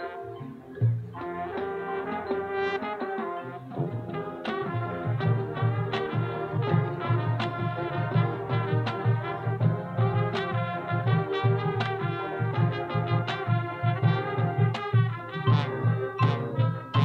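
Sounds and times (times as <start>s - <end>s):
sustained brass chords: 0.0s - 17.0s.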